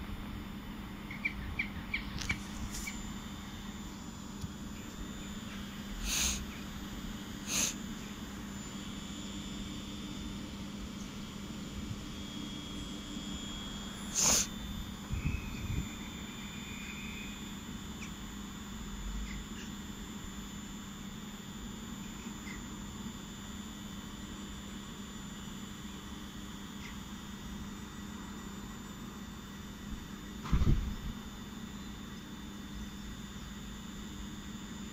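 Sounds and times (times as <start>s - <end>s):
faint high whine: 0.0s - 34.9s
train electrical hum: 0.0s - 34.9s.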